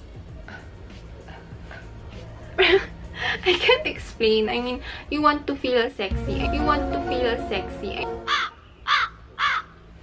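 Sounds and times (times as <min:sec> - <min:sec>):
crow cawing: 0:08.3 - 0:09.8.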